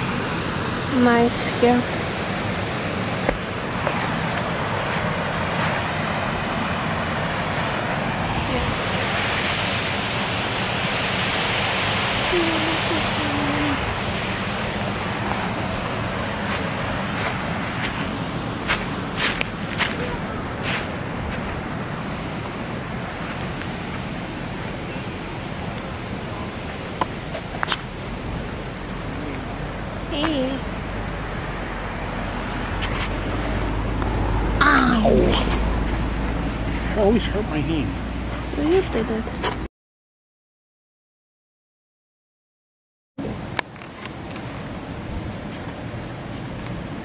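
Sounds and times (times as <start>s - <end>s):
waterfall rushing: 0.0s - 38.5s.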